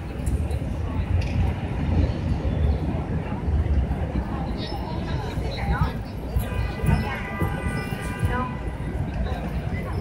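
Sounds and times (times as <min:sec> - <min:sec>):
faint chatter of people: 0:00.0 - 0:10.0.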